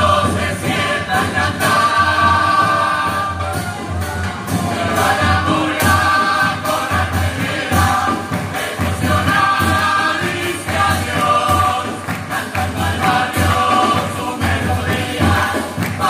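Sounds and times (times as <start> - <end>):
chorus singing in harmony: 0.0 - 16.0.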